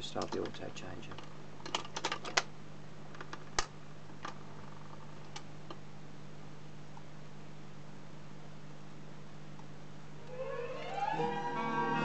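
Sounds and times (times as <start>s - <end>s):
turntable hum: 10.1s - 12.0s.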